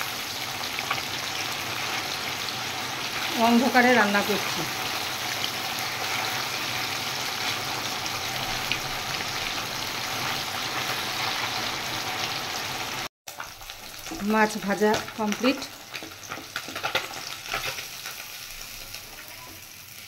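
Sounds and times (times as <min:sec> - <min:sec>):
fish sizzling in hot oil: 0:00.0 - 0:20.0.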